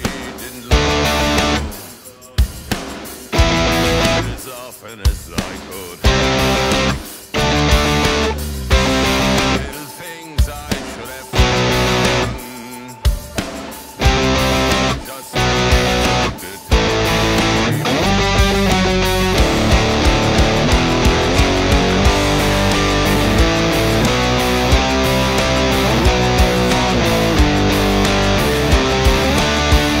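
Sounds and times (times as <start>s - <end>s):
electric guitar power chords: 0.7s - 1.8s, 3.3s - 4.4s, 6.0s - 9.8s, 10.5s - 12.6s, 13.6s - 30.0s.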